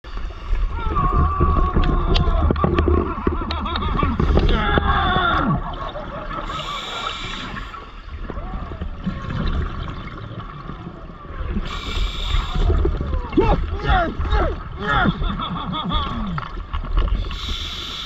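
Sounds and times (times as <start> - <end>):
exhaled air bubbling underwater: 0.0 - 18.0
hissing regulator inhale: 6.4 - 8.1, 11.6 - 12.6, 17.1 - 18.0.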